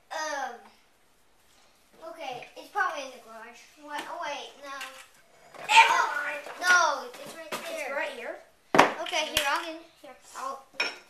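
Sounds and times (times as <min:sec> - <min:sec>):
children talking and calling out: 0:02.0 - 0:10.8.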